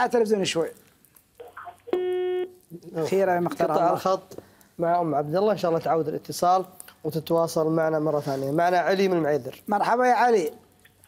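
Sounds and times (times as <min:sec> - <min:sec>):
telephone line tone: 0:01.9 - 0:02.5.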